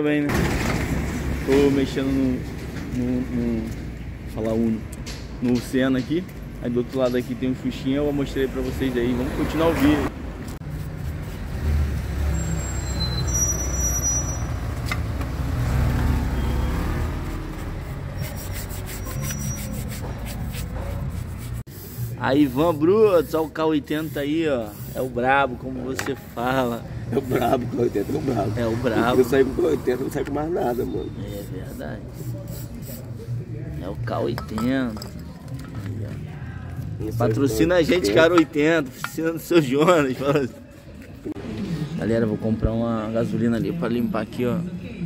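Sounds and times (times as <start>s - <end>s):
aerosol spray hissing: 21.4s - 22.7s, 23.9s - 25.2s, 30.7s - 33.1s.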